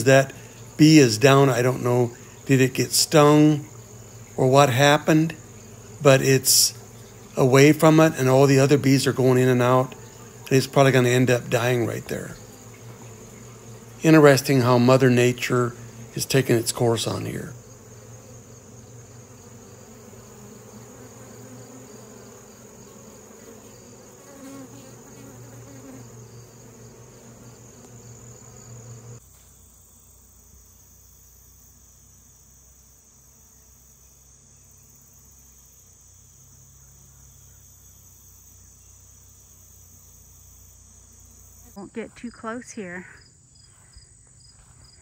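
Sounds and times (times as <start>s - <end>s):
bees buzzing: 0.0s - 45.0s
high-pitched insect chorus: 0.0s - 45.0s.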